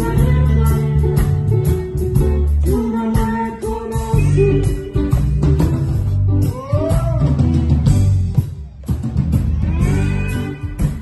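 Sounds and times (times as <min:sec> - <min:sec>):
drum beats: 0:00.0 - 0:11.0
guitar playing: 0:00.0 - 0:11.0
live band music: 0:00.0 - 0:11.0.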